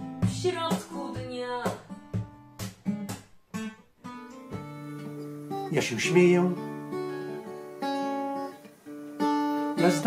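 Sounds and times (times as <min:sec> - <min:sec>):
acoustic guitar chords ringing: 0:02.0 - 0:10.0.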